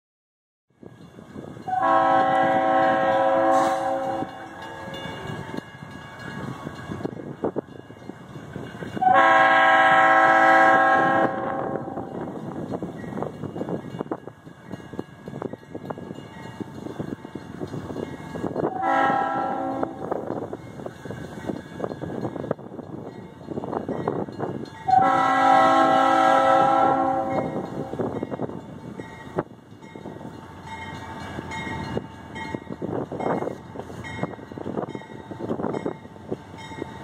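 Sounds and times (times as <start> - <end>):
locomotive air horn: 1.7 - 4.5, 9.0 - 12.2, 18.7 - 20.2, 24.9 - 28.0.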